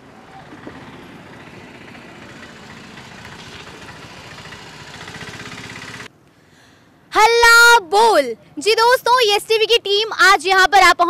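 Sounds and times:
vehicle engine running: 0:00.0 - 0:06.1
street traffic: 0:00.0 - 0:11.0.

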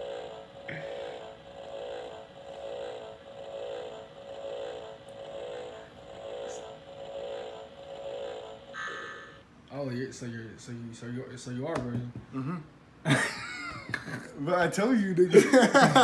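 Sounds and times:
warbling electronic drone: 0:00.0 - 0:09.4.

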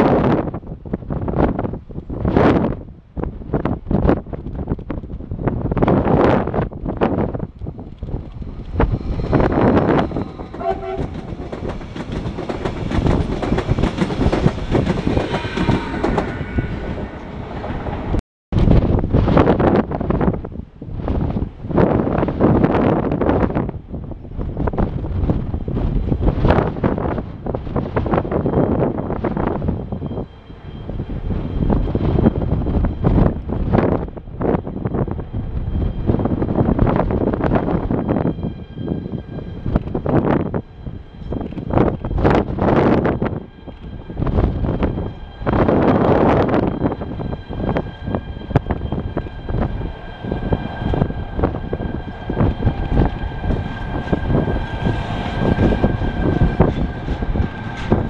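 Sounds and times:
freight train rumble: 0:00.0 - 0:58.0
train wheels clattering on rails: 0:07.0 - 0:19.7, 0:41.2 - 0:58.0.

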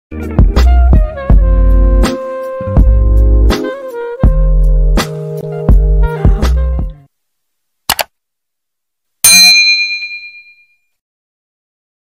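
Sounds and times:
mouse click: 0:07.9 - 0:08.1
notification bell ding: 0:09.3 - 0:10.8.

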